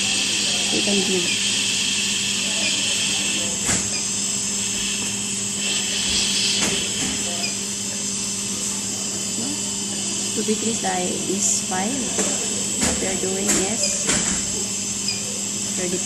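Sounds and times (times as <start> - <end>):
hiss of gas flowing: 4.6 - 7.3.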